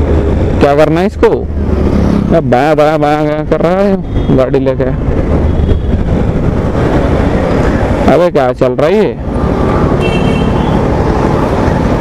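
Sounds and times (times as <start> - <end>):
wind on microphone: 5.2 - 8.0.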